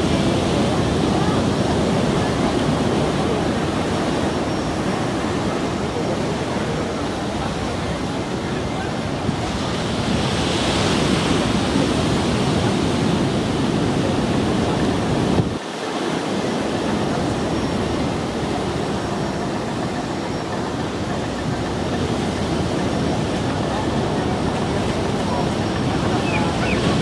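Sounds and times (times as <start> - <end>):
sea surf: 0.0 - 27.0
wind buffeting microphone: 0.0 - 27.0.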